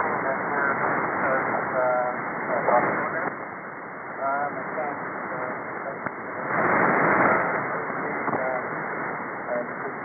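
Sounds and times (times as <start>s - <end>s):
weak radio speech: 0.0s - 3.4s, 4.1s - 10.0s
radio hiss and static: 0.0s - 10.0s.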